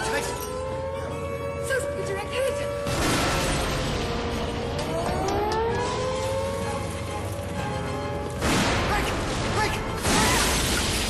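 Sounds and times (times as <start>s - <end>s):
bomb blast and falling debris: 2.8s - 4.7s, 8.4s - 11.0s
rising wail: 4.7s - 6.6s.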